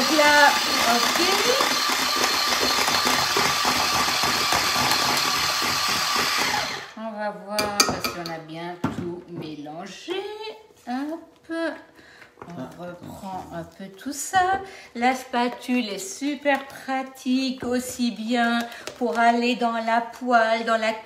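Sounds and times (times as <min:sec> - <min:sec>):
electric hand mixer whisking: 0:00.0 - 0:07.0.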